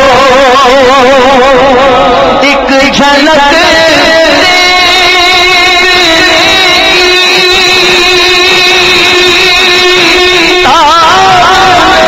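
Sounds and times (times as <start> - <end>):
man singing long note: 0.0 - 12.0.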